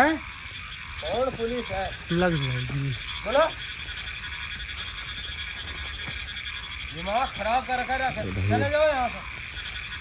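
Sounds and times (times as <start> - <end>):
frogs croaking: 0.0 - 10.0.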